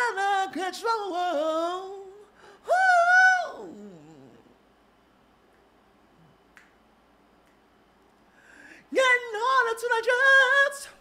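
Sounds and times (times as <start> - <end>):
man singing a cappella: 0.0 - 4.5, 8.8 - 11.0
finger snap: 5.5 - 5.7, 6.5 - 6.8, 7.4 - 8.2.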